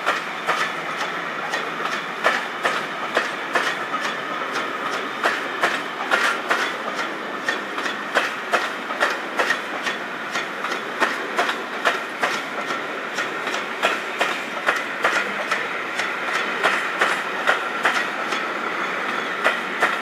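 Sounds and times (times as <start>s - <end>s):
train wheels clickety-clack: 0.0s - 20.0s.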